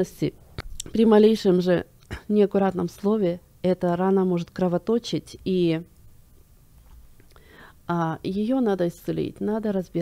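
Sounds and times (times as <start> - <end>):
woman speaking: 0.0 - 6.0, 7.8 - 10.0
woman breathing in: 7.3 - 7.8.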